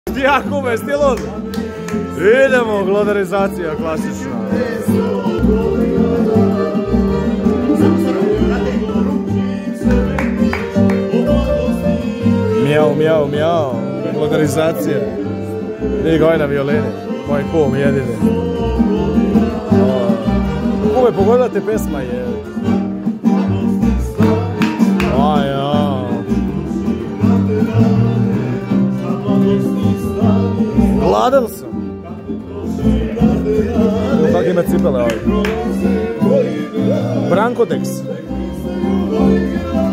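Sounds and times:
bass beat: 0.1 - 37.5
strummed guitars: 0.1 - 39.9
violin tune: 0.1 - 39.9.

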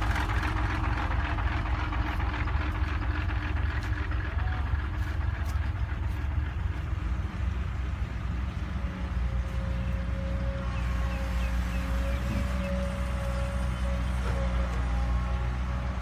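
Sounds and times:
dump truck engine rumbling: 0.0 - 16.0.

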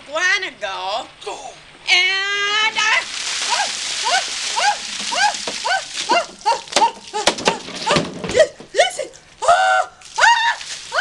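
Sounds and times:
woman squealing: 3.4 - 8.6, 9.4 - 11.0.

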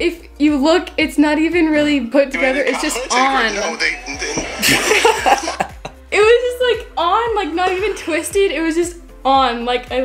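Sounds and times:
people laughing: 2.4 - 5.9.

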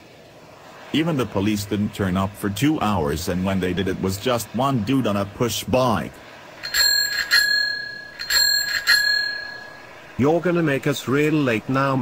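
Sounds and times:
bicycle bell ringing: 6.6 - 10.1.

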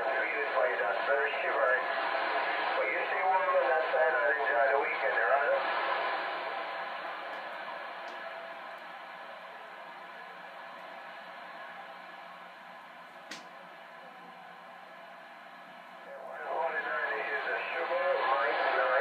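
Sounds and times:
radio static hiss: 0.0 - 10.8, 15.6 - 19.0
distant voice on radio: 16.0 - 19.0.

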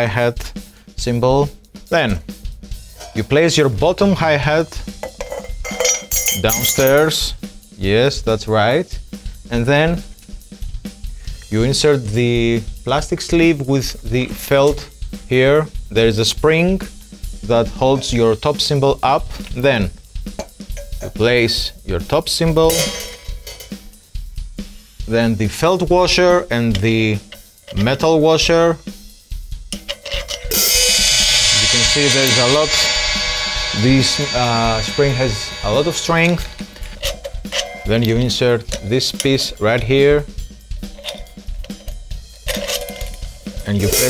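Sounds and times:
faint cymbal ring: 2.8 - 3.7, 4.8 - 7.5, 20.3 - 21.8, 29.8 - 44.0
metallic handling noise: 2.9 - 3.5, 4.9 - 7.2, 20.3 - 21.2, 22.6 - 23.9, 26.4 - 28.2, 29.7 - 44.0.

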